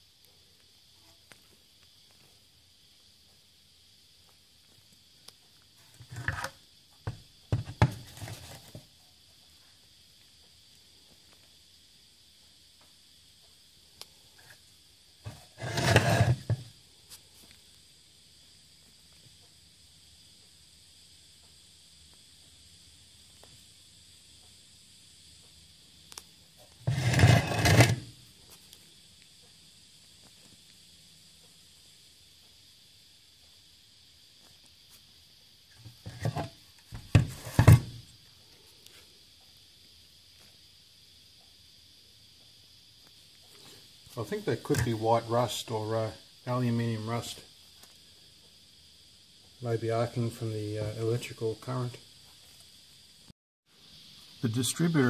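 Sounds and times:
high insect chirring: 0:00.0 - 0:55.0
rubbing and scraping: 0:05.8 - 0:06.6, 0:07.6 - 0:08.8, 0:15.3 - 0:16.6, 0:26.8 - 0:28.1, 0:36.0 - 0:37.9.

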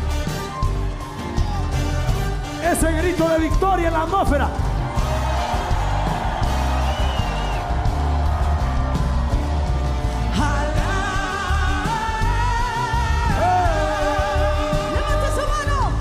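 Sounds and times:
live worship music with bass: 0:00.0 - 0:16.0.

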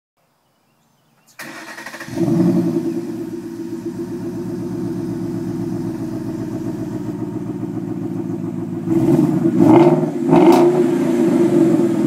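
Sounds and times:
car starter cranking engine: 0:01.4 - 0:08.6.

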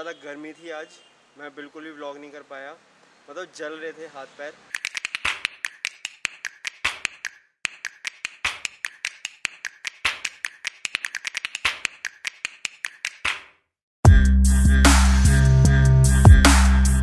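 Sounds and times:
sharp clicks and taps: 0:04.7 - 0:13.6.

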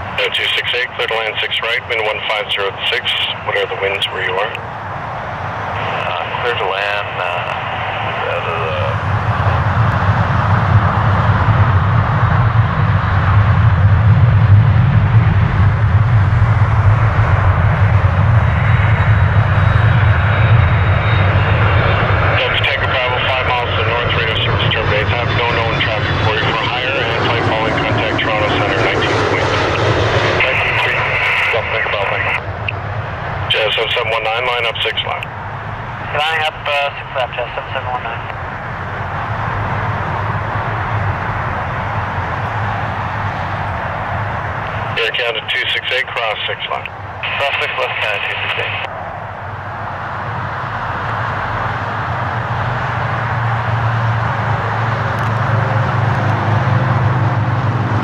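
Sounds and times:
jet airliner flying over: 0:00.0 - 0:58.0.

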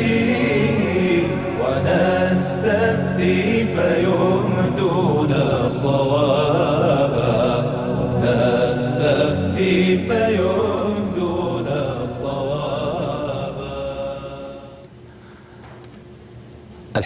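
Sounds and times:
chanted vocal theme music: 0:00.0 - 0:14.9.

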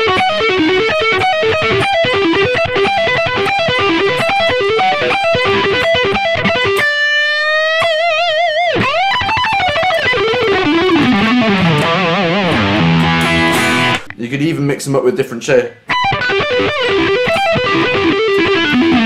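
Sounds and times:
electric guitar lick: 0:00.0 - 0:14.2, 0:15.8 - 0:19.0.

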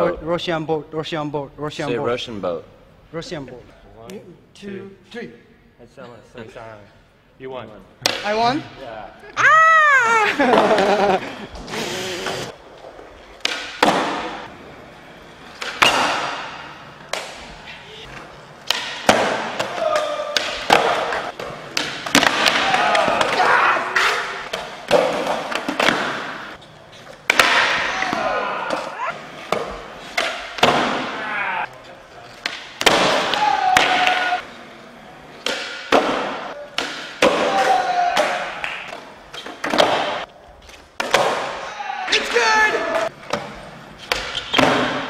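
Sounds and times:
skateboard wheels rolling: 0:10.4 - 0:20.0.

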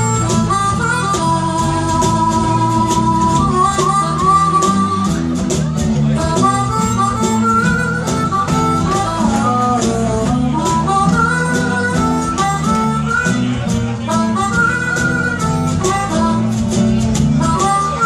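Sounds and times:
bass guitar: 0:00.0 - 0:18.0
cajon beat: 0:00.0 - 0:18.0
harmonica solo: 0:00.0 - 0:18.0
strummed acoustic guitars: 0:00.0 - 0:18.0.

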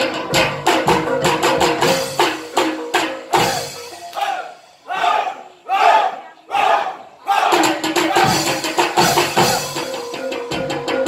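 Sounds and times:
percussion-led music: 0:00.0 - 0:05.1, 0:07.3 - 0:11.0
group shouting war cries: 0:03.4 - 0:09.7.

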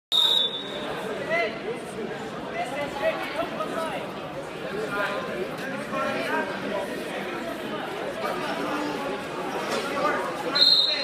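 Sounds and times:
referee whistle blast: 0:00.1 - 0:00.8, 0:10.6 - 0:11.0
spectators chattering and calling: 0:00.1 - 0:11.0.

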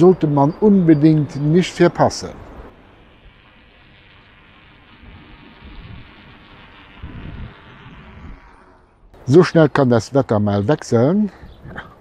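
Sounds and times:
electric scooter motor whining: 0:02.5 - 0:09.1
low rumble: 0:04.7 - 0:09.4.

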